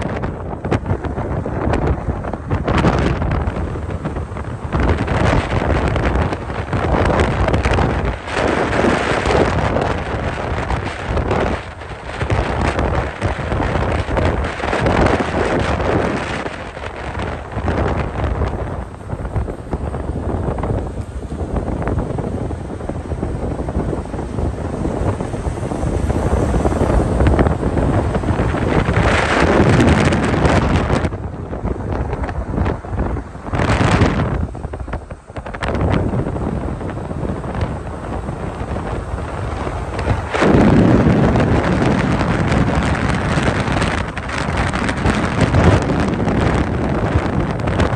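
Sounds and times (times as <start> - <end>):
road and engine noise: 0.0 - 47.9
wind buffeting microphone: 0.0 - 47.9.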